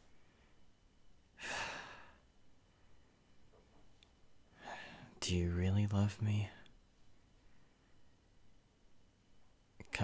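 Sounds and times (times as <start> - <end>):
man sighing: 1.4 - 2.2.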